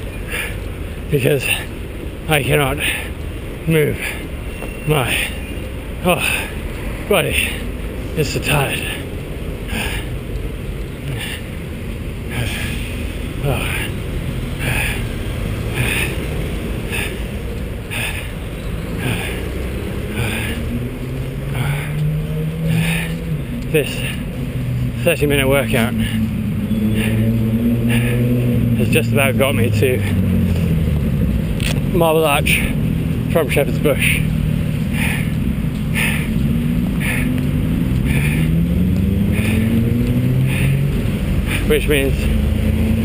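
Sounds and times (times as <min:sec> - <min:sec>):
road traffic rumble: 0:00.0 - 0:43.0
vehicle engine drone: 0:00.0 - 0:43.0.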